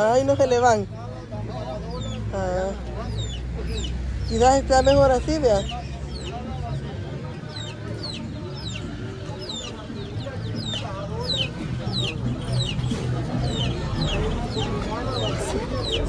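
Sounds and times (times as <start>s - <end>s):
murmur of crowd voices: 0.0s - 16.0s
poultry peeping: 0.0s - 16.0s.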